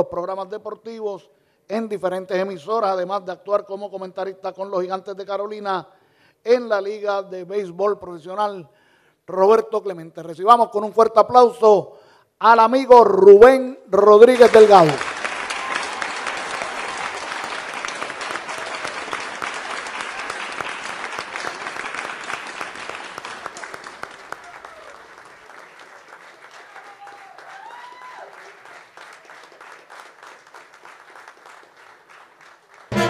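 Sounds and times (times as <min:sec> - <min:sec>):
audience applauding: 0:14.3 - 0:33.0.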